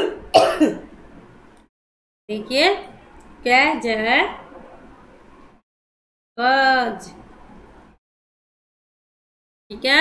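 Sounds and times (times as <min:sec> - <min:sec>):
woman clearing her throat: 0:00.0 - 0:00.9.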